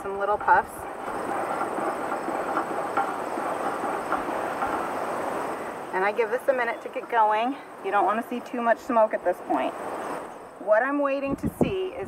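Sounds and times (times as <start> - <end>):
faint crackles: 0.0 - 10.4.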